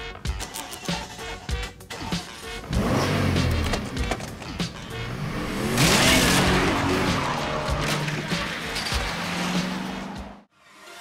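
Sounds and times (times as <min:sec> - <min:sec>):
car engine revving: 0:02.4 - 0:10.5.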